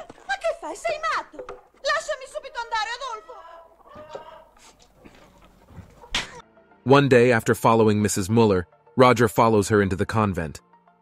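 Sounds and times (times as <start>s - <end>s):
hens clucking: 0.9s - 6.4s.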